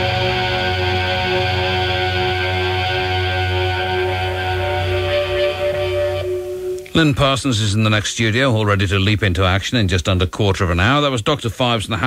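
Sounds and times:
low bass: 0.0 - 7.2
rock band droning tones: 0.0 - 7.4.

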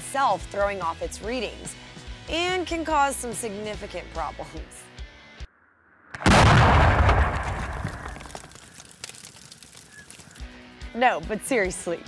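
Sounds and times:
explosion boom and rumble: 6.1 - 8.6.

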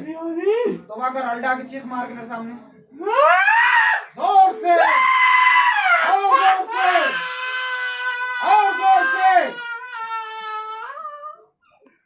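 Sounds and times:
person screaming: 3.0 - 11.4.

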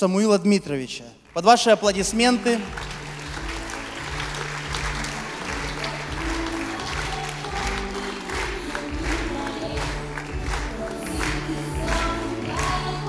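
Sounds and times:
congregation applauding: 1.2 - 13.0
instrumental music: 1.9 - 13.0.

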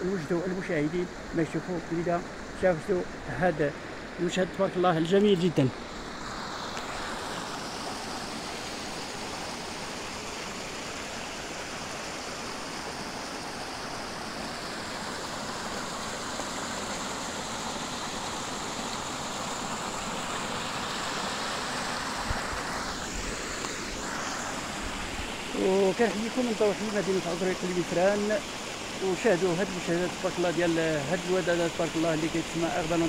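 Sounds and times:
water running over stones: 0.0 - 33.0.

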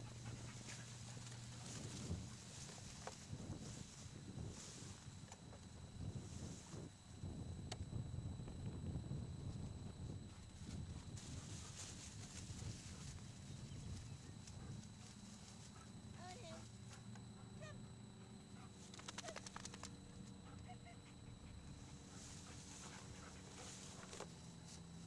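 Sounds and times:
low steady rumble: 0.0 - 25.0
quick run of clicks: 18.8 - 20.0.

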